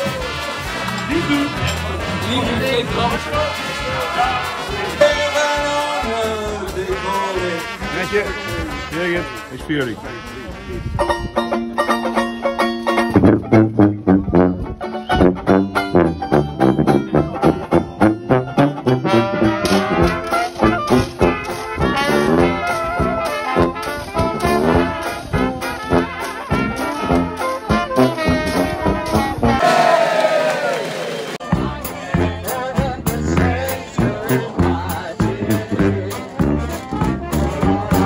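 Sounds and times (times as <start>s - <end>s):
bass drum beat: 0.0s - 11.3s, 13.1s - 29.9s, 31.4s - 38.0s
banjo strumming: 0.0s - 29.8s, 31.4s - 38.0s
dixieland band playing: 0.0s - 38.0s.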